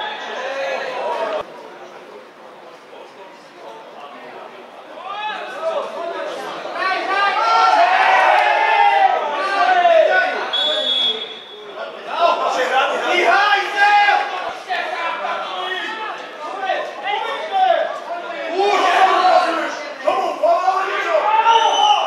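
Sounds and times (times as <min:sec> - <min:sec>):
men shouting and talking: 0:04.3 - 0:22.0
referee's whistle blast: 0:10.5 - 0:11.7.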